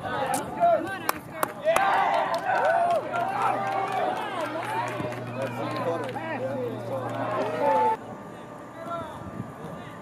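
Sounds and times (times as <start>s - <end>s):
voices shouting and calling out: 0.0s - 10.0s.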